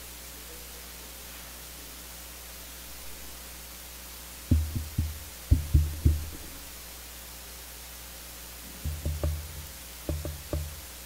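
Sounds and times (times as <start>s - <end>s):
faint steady hiss: 0.0s - 11.0s
low resonant booming thuds: 4.5s - 6.6s, 8.8s - 10.8s.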